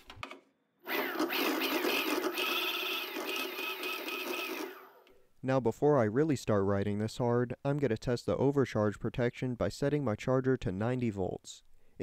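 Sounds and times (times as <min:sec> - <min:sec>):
electric motor whining: 0:00.9 - 0:04.9.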